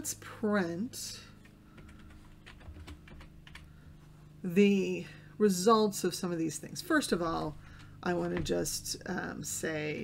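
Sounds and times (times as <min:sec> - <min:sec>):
keystrokes on computer keyboard: 0:01.4 - 0:03.7.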